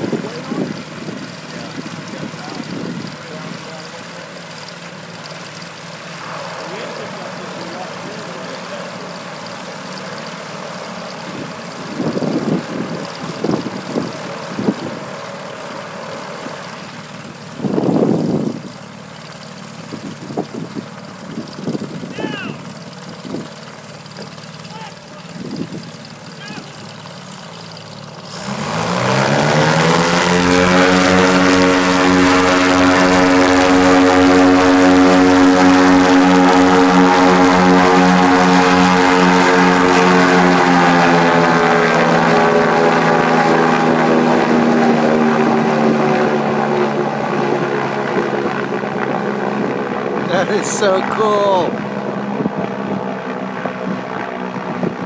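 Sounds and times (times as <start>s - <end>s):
airship propeller engines droning: 0.0s - 55.0s.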